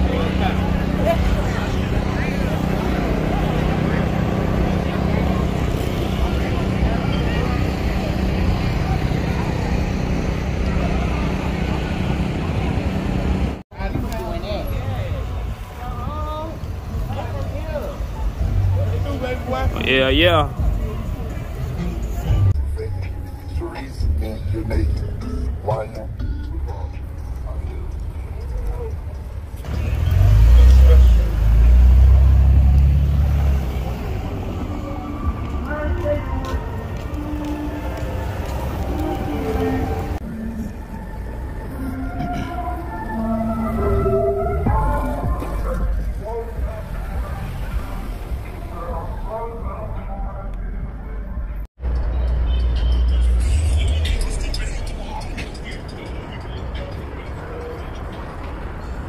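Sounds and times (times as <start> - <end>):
cars driving slowly past: 0.0 - 26.0, 26.6 - 59.0
voices: 0.0 - 59.0
music: 20.5 - 29.7, 51.8 - 59.0.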